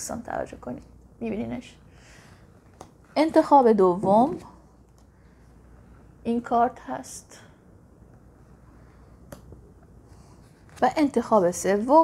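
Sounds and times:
woman speaking: 0:00.0 - 0:01.8, 0:03.1 - 0:04.6, 0:06.2 - 0:07.5, 0:10.8 - 0:12.0.

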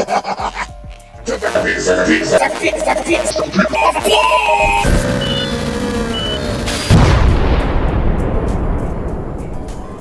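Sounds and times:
cartoon explosion blast: 0:06.5 - 0:09.2.

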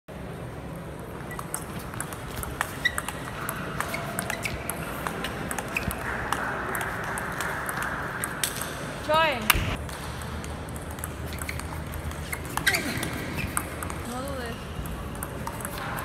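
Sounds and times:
table tennis balls clicking: 0:01.0 - 0:16.0
shoe squeaks on floor: 0:02.7 - 0:04.8, 0:11.3 - 0:13.8.

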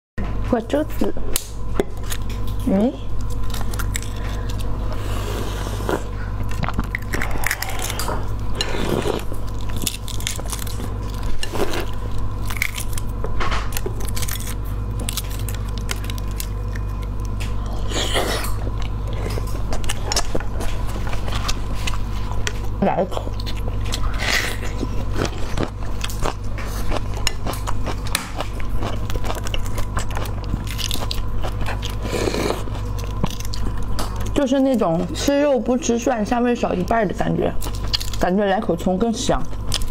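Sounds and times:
person biting and chewing: 0:03.2 - 0:34.4
egg shell cracking and peeling: 0:09.4 - 0:17.7.

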